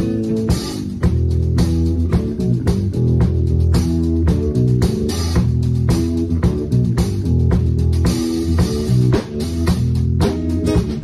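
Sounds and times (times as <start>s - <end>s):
fretless bass held notes: 0.0s - 11.0s.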